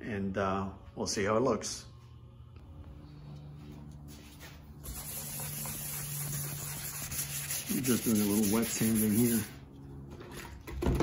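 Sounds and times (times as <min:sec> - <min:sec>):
steady low hum: 0:00.0 - 0:10.7
hand wet sanding: 0:04.2 - 0:09.6.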